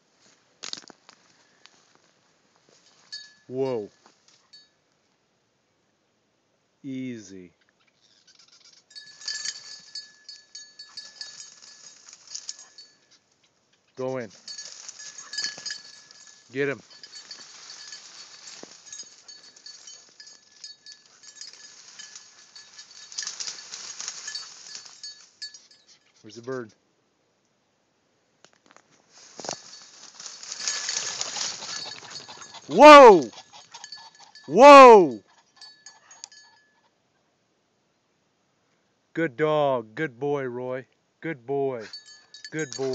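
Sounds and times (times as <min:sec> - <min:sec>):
small bell jingling: 0:02.9 - 0:04.8, 0:08.3 - 0:13.2, 0:13.9 - 0:26.7, 0:29.2 - 0:36.9, 0:41.8 - 0:42.9.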